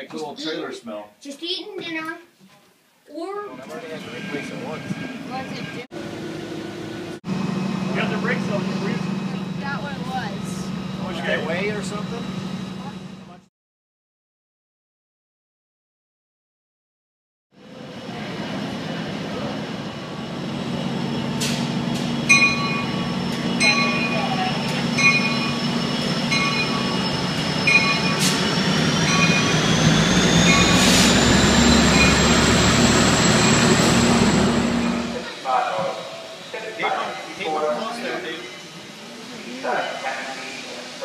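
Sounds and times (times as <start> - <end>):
voices: 3.1 - 5.9, 7.8 - 13.5, 22.3 - 28.2, 34.0 - 41.0
train rumbling past: 3.5 - 13.5, 17.6 - 41.0
bell ringing: 22.3 - 29.8.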